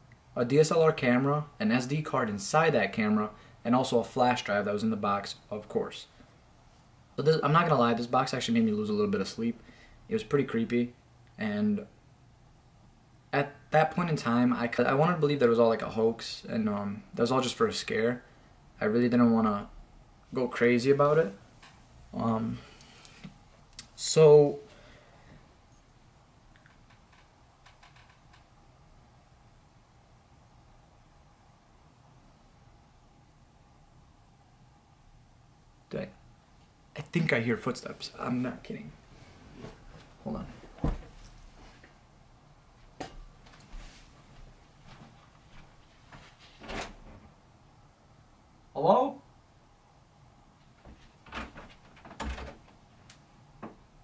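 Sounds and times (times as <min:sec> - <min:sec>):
door opening knocks and clicks: 0:51.2 - 0:52.8.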